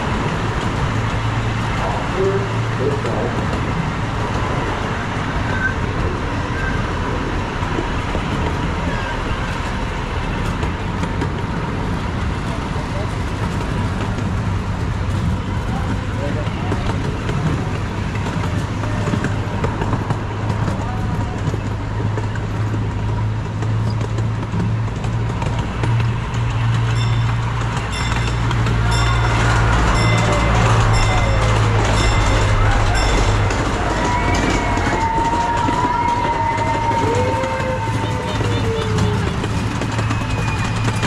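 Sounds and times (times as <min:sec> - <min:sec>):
miniature train engine hum: 0:00.0 - 0:41.0
wheels rolling on track: 0:00.0 - 0:41.0.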